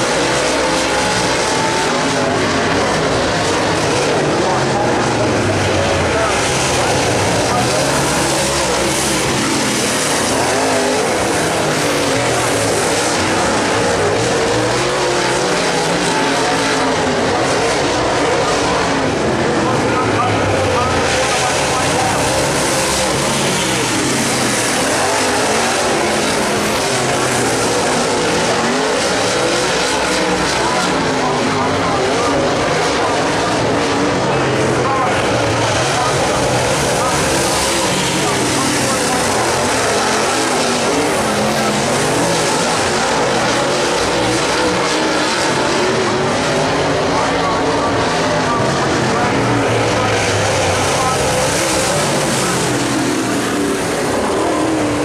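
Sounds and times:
race car engines at full throttle: 0:00.0 - 0:55.0.

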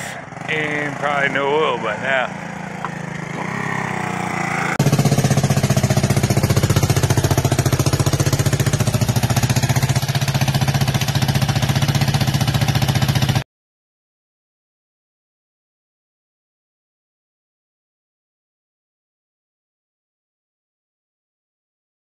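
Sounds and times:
loud four-stroke engine running: 0:00.0 - 0:13.4.

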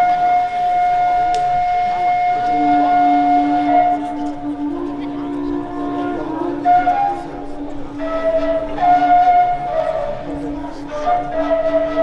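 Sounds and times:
flute high held note: 0:00.0 - 0:12.0
lower held flute tone: 0:00.0 - 0:12.0.

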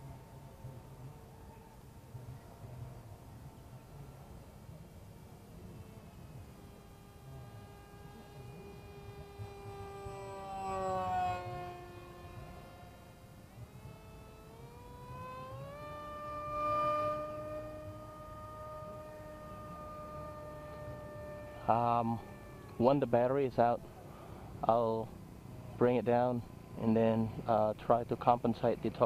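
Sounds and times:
electric motor and propeller whining: 0:00.0 - 0:29.0.

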